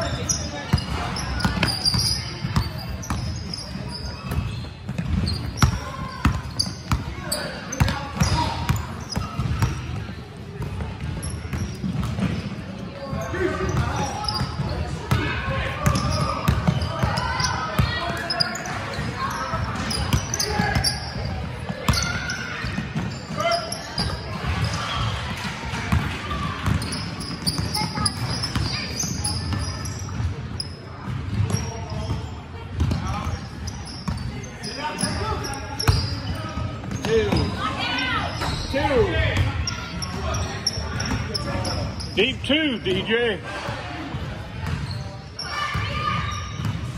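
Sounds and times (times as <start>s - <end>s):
sneaker squeaks: 0.0s - 43.1s, 44.1s - 46.9s.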